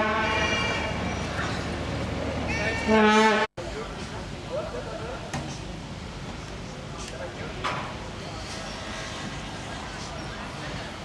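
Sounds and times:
distant traffic hum: 0.0s - 11.0s
faint far-off voices: 2.5s - 11.0s.

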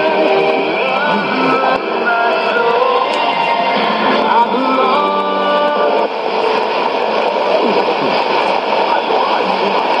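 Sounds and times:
shortwave radio hiss and static: 0.0s - 10.0s.

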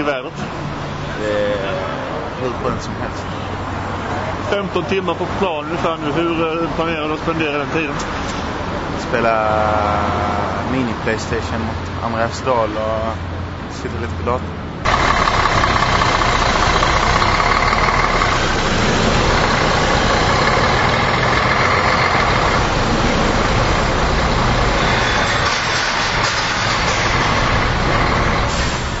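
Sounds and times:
coach engine running: 14.8s - 29.0s.

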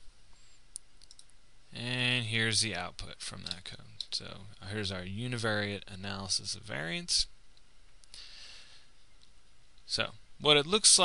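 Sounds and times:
background hiss: 0.0s - 11.0s
computer mouse click: 0.7s - 1.3s.

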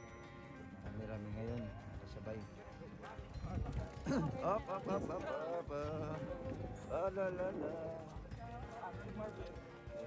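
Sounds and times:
faint voices: 0.6s - 10.0s
joggers footsteps on pavement: 0.8s - 10.0s.

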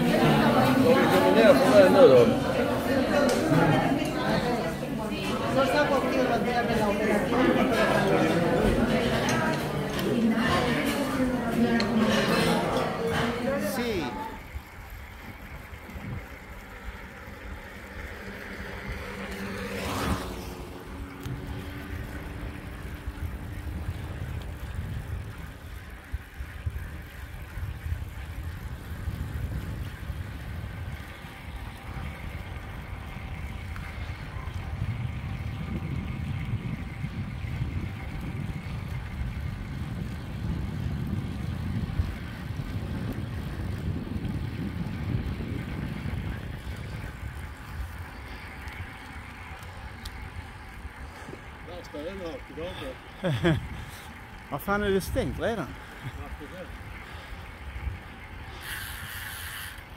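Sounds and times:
motor vehicle passing: 0.0s - 59.8s
bicycle tyre noise: 0.0s - 59.9s
wind rumble on microphone: 0.0s - 59.9s.

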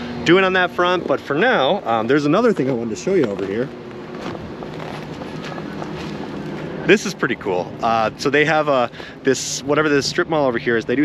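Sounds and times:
charger cooling equipment humming: 0.0s - 11.0s
wind noise on microphone: 3.7s - 6.8s.

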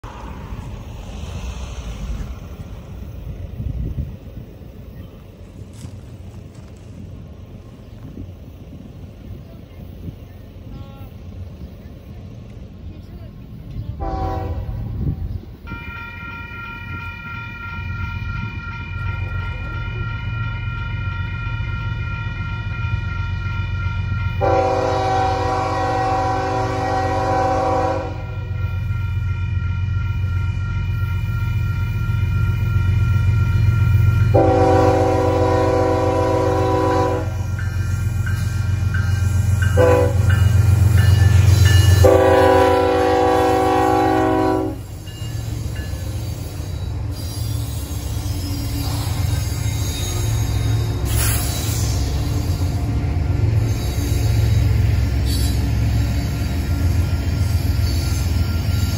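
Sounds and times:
diesel engines rumbling: 0.0s - 58.9s
train horn blasts: 14.0s - 33.4s, 34.0s - 37.6s, 39.6s - 45.1s.

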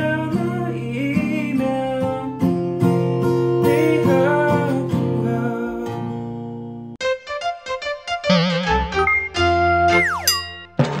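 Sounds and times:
cartoonish logo jingle: 8.1s - 10.9s.

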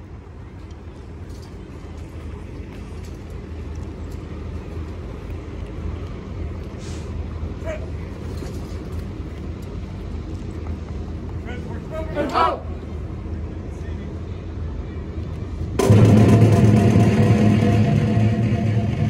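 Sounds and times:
low street rumble: 0.0s - 19.0s.

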